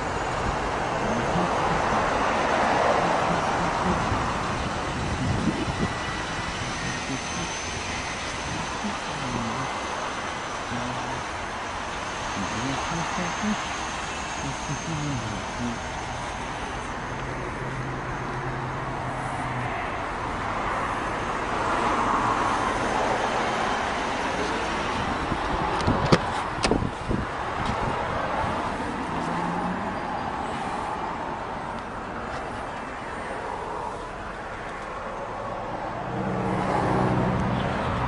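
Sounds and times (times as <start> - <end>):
traffic noise: 0.0 - 38.0.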